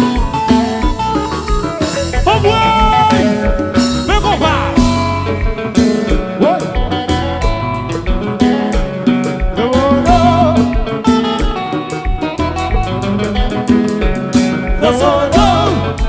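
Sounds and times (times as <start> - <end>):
bass guitar: 0.0 - 16.0
drum kit beat: 0.0 - 16.0
guitar: 0.0 - 16.0
person singing: 1.8 - 7.2, 9.4 - 11.6, 14.7 - 16.0.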